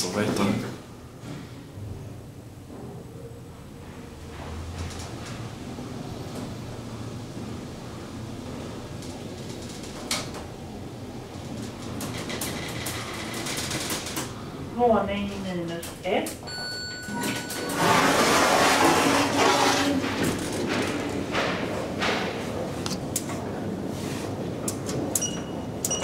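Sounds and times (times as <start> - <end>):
elevator drive humming: 0.0 - 26.0
elevator clicks: 24.6 - 26.0.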